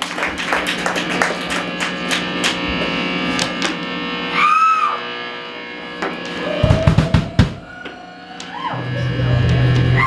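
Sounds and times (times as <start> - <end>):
electric guitar and bass playing: 0.0 - 10.0.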